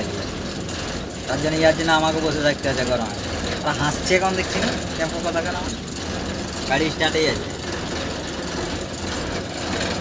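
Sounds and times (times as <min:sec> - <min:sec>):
diesel truck engine droning: 0:00.0 - 0:10.0.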